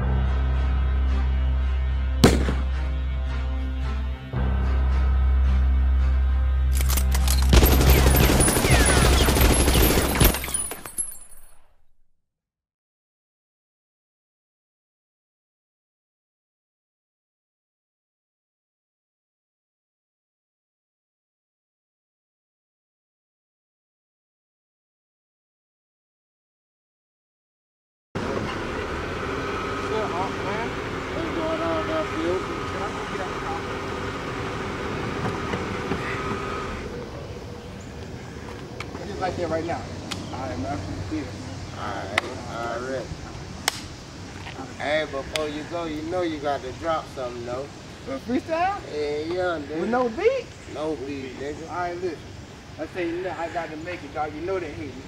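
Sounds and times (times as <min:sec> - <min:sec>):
dark sustained music: 0:00.0 - 0:09.5
loud ringing crack: 0:02.2 - 0:02.8
car engine running: 0:28.2 - 0:36.9.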